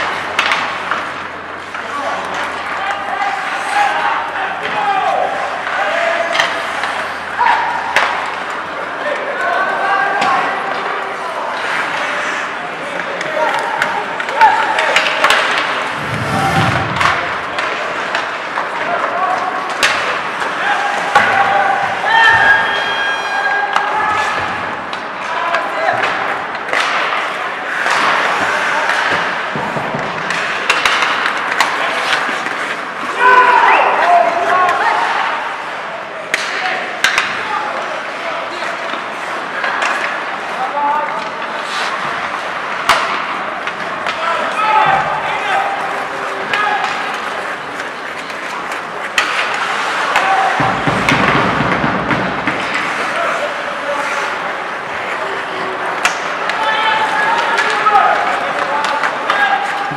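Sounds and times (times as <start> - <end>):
hockey sticks and puck clacking: 0.0 - 59.9
players shouting: 0.1 - 41.5, 42.3 - 59.9.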